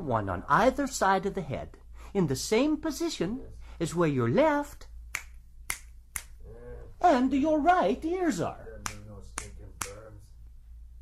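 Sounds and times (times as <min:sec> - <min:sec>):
finger snaps: 0:05.1 - 0:06.4, 0:08.8 - 0:10.0.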